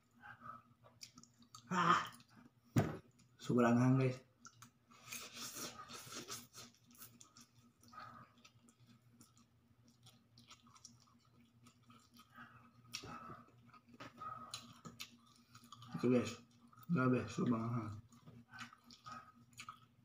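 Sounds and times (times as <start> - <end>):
chewing with wet clicks: 0.7 - 3.4, 4.4 - 4.8, 6.5 - 20.0.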